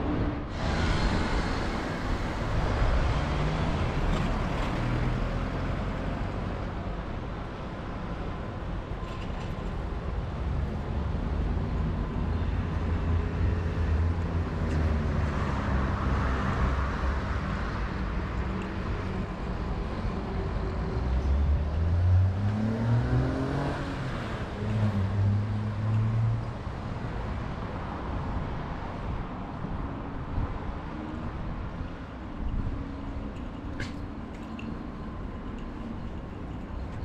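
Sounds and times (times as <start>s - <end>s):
vehicles passing: 0.0s - 37.0s.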